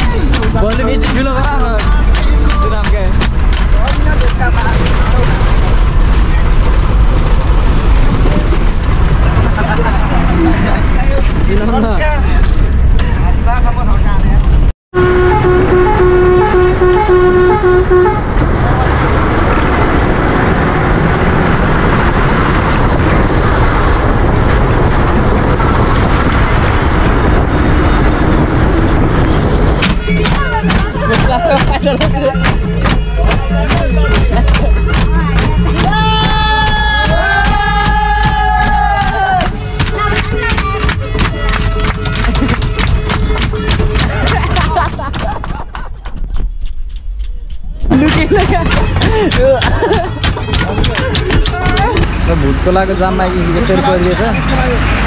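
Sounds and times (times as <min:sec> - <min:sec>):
bus engine and road noise: 0:00.0 - 0:55.0
horn short toots: 0:15.0 - 0:18.3.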